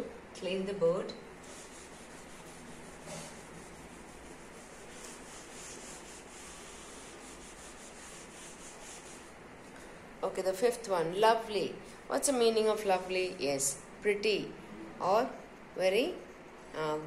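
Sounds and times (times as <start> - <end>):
eraser wiping whiteboard: 1.4 - 9.4.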